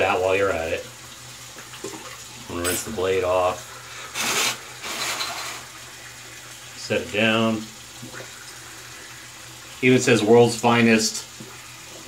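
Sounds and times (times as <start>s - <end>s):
tap water splashing over razor: 1.4s - 3.2s, 6.8s - 8.6s, 9.8s - 12.0s.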